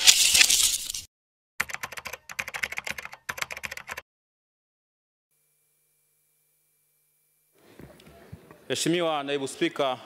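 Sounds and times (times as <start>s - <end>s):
keyboard typing clicks: 1.6s - 4.0s.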